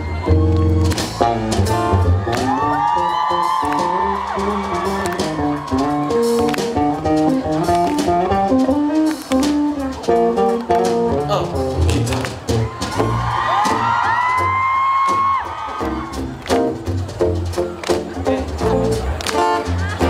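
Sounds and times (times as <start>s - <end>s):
guitar-led live band: 0.0s - 20.0s.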